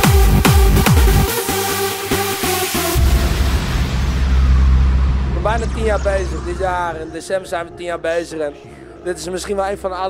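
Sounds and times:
deep sustained bass note: 0:03.0 - 0:07.2
man speaking: 0:05.4 - 0:10.0.

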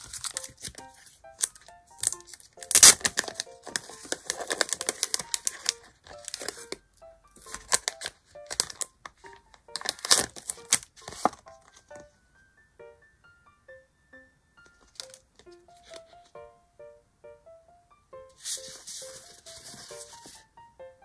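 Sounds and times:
packaging crinkling and rustling: 0:00.0 - 0:06.8, 0:07.4 - 0:12.0, 0:14.8 - 0:16.2, 0:18.4 - 0:20.4.

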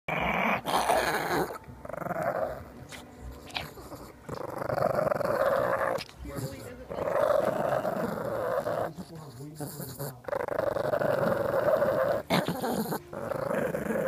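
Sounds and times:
small dog growling: 0:00.1 - 0:14.0.

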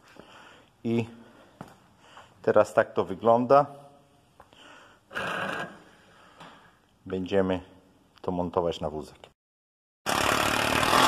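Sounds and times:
power driver driving screw into wood: 0:10.1 - 0:11.0.

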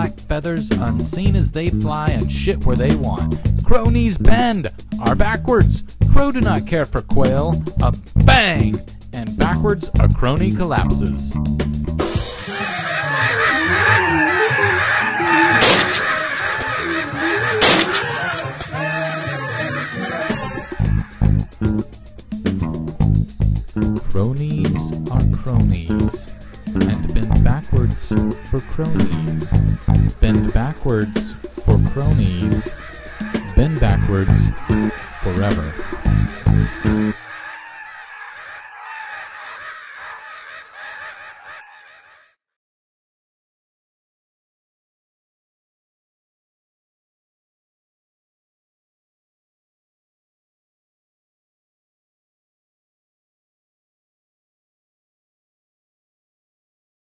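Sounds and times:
flock of birds calling: 0:12.4 - 0:22.2, 0:25.8 - 0:42.3
shotgun blasts: 0:15.6 - 0:16.0, 0:17.6 - 0:18.0.

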